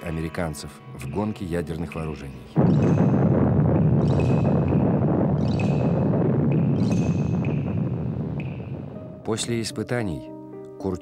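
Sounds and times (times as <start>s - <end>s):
deep explosion rumble: 2.5s - 9.8s
high ringing ping: 2.6s - 9.3s.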